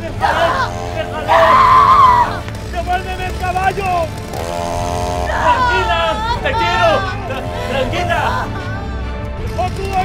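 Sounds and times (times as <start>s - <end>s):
man yelling: 0.0s - 2.4s, 5.2s - 8.6s
chainsaw engine revving: 0.0s - 8.5s, 9.5s - 10.0s.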